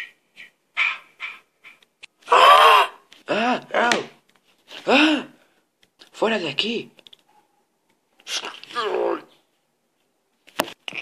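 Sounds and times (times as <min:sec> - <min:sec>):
person crying out: 0:02.3 - 0:04.0.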